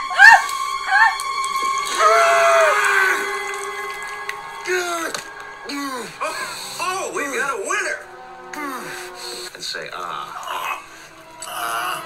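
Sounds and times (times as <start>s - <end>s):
man screaming in pain: 1.9s - 3.3s.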